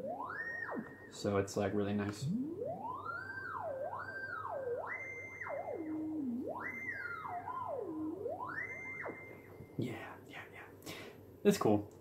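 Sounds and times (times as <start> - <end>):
synthesizer sine tone sweeping: 0.0 - 9.8.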